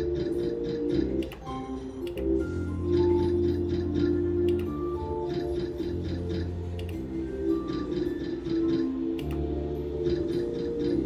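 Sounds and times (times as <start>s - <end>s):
slot machine jingle: 0.0s - 11.0s
reels ticking rapidly: 7.7s - 9.0s.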